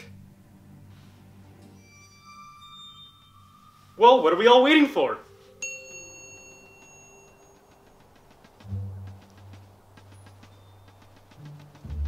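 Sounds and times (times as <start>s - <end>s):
bell-like chime: 1.7s - 8.2s
soft even ticking: 6.0s - 12.0s.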